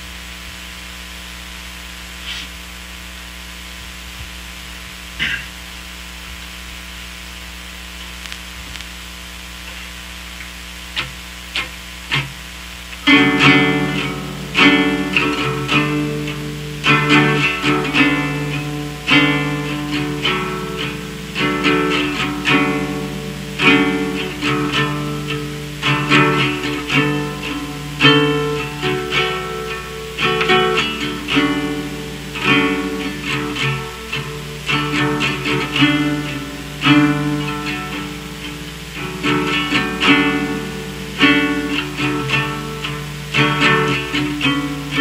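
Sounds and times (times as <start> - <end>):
steady low hum: 0.0 - 45.0
guitar playing picked chords: 9.6 - 45.0
plucked guitar notes: 11.0 - 45.0.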